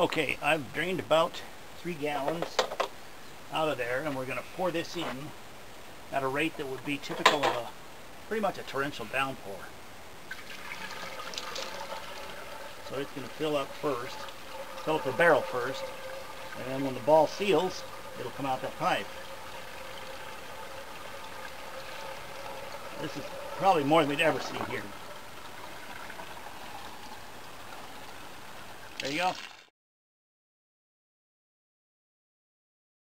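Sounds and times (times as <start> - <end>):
water pouring and splashing down pipe: 10.2 - 29.7.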